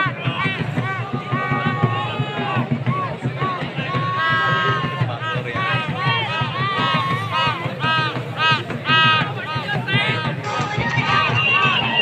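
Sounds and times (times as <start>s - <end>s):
steady low beat: 0.0s - 12.0s.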